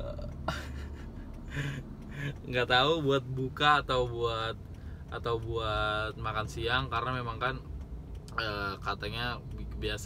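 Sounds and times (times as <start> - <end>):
car idling: 0.0 - 10.0.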